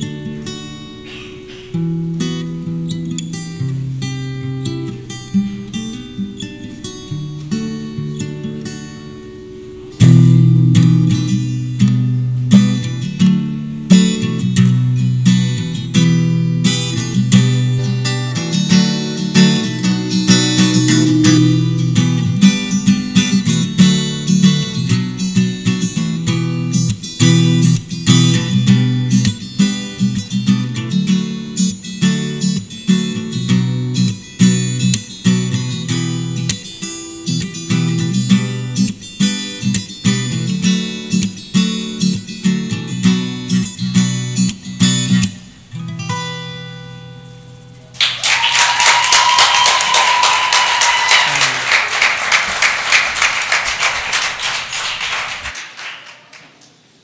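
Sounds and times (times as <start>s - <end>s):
fingerstyle acoustic guitar: 0.0s - 47.8s
audience applause: 48.0s - 56.7s.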